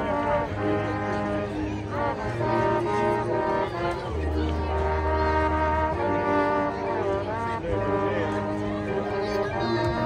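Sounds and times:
marching band brass chords: 0:00.0 - 0:10.0.

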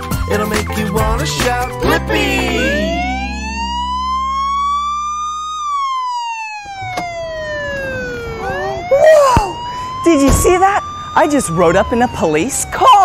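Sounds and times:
police car siren wailing: 0:00.0 - 0:13.0
low held music notes: 0:00.3 - 0:08.7.

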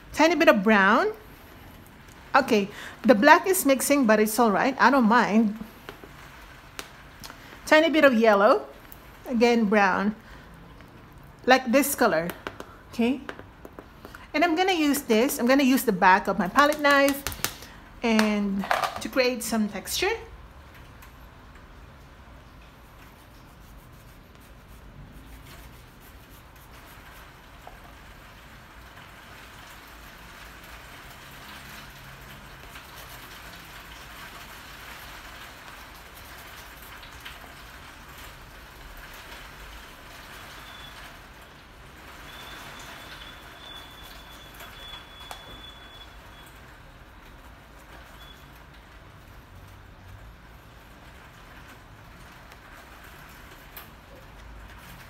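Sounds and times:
steady rain falling: 0:00.0 - 0:55.0
light taps: 0:12.2 - 0:14.2.

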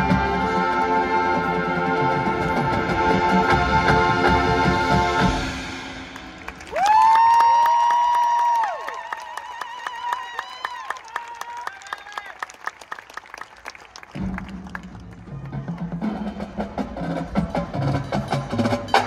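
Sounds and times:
marching band music: 0:00.0 - 0:06.7, 0:14.1 - 0:19.0
audience clapping: 0:06.0 - 0:15.9.

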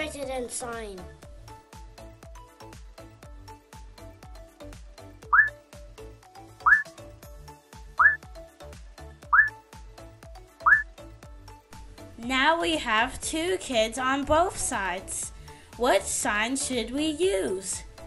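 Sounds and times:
background music with steady beat: 0:00.0 - 0:18.0
rising whistle-like sound effects: 0:05.4 - 0:05.6, 0:06.7 - 0:06.9, 0:09.3 - 0:09.5.

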